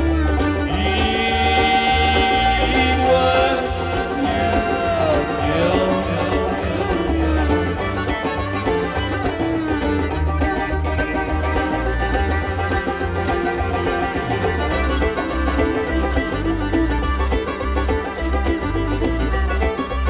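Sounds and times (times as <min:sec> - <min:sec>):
bass: 0:00.0 - 0:20.0
fiddle: 0:00.0 - 0:20.0
plucked strings: 0:00.0 - 0:20.0
drums keeping a beat: 0:00.1 - 0:20.0.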